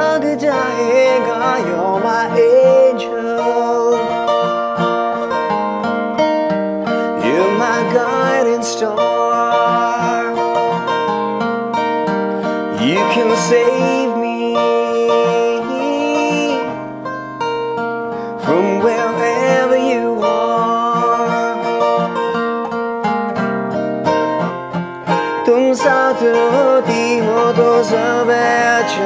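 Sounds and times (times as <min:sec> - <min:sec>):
man singing: 0:00.0 - 0:05.5, 0:07.0 - 0:11.1, 0:12.7 - 0:17.0, 0:18.2 - 0:22.4, 0:25.4 - 0:29.0
acoustic guitar chords: 0:00.0 - 0:29.0.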